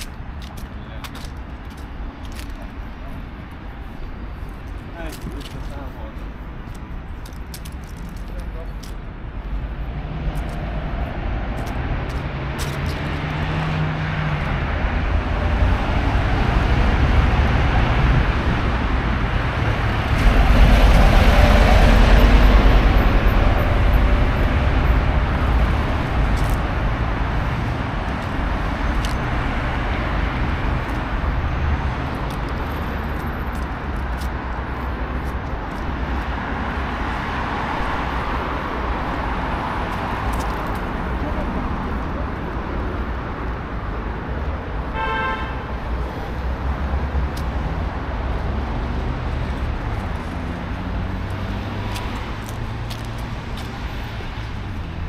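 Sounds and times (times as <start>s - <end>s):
cars driving past: 0.0s - 55.0s
heavy vehicle passing: 9.6s - 44.8s.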